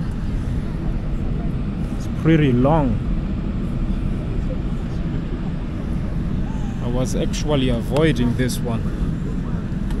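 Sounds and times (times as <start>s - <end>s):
airliner cabin rumble and hiss: 0.0s - 10.0s.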